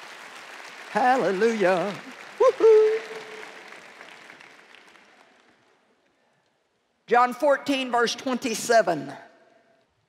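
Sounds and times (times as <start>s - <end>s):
audience applause: 0.0s - 5.9s.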